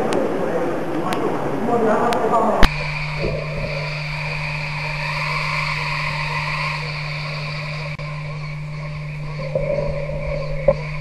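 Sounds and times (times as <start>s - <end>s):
even hiss: 0.0s - 11.0s
steady low hum: 0.0s - 11.0s.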